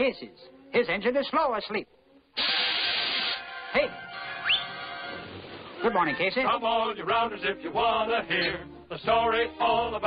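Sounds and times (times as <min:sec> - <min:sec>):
music: 0:00.0 - 0:10.0
steam locomotive hiss: 0:02.4 - 0:03.5.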